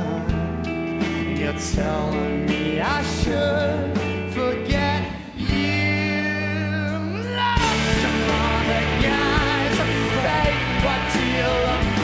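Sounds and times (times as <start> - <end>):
ringing guitar: 7.6 - 12.0
rock band sustained chord: 7.6 - 12.0.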